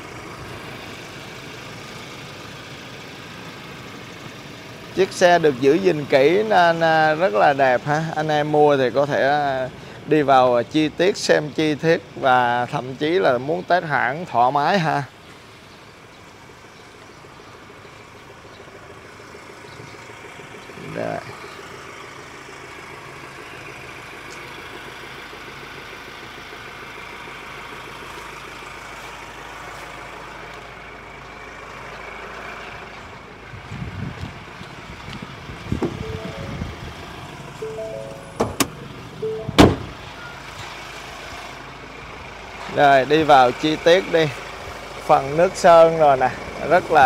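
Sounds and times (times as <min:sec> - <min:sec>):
street traffic noise: 0:00.0 - 0:47.0
short beeps: 0:35.9 - 0:36.9, 0:37.6 - 0:40.4.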